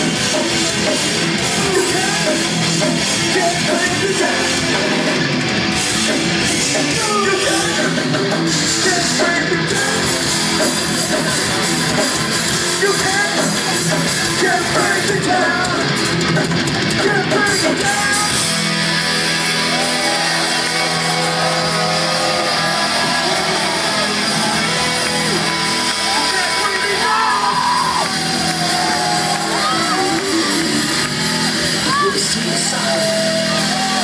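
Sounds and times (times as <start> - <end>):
distorted electric guitars: 0.0 - 34.0
live heavy rock band: 0.0 - 34.0
people yelling and singing: 0.0 - 34.0.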